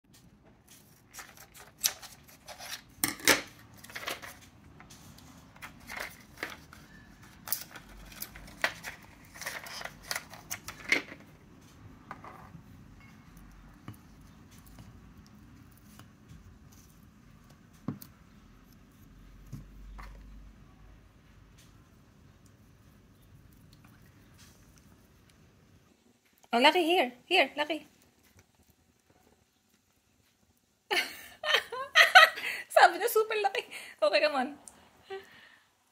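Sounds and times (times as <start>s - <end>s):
scissors cutting foil blister pack: 0.9s - 3.1s, 5.7s - 10.8s.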